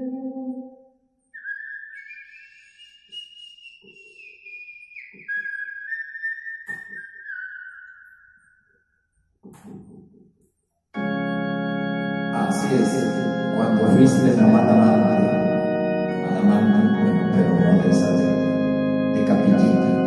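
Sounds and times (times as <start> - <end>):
person whistling a tune: 1.4 - 8.6.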